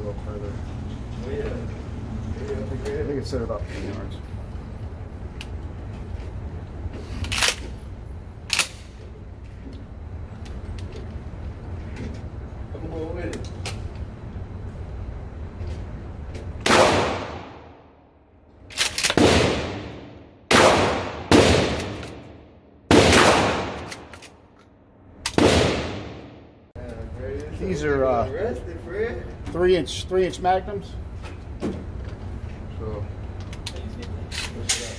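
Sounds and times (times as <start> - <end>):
shotgun shots echoing indoors: 16.6 - 18.0, 19.1 - 24.1, 25.3 - 26.6.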